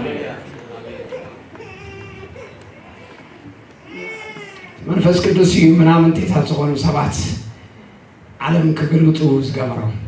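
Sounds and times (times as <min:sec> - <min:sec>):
man speaking over loudspeaker: 0:04.8 - 0:07.6, 0:08.4 - 0:10.0.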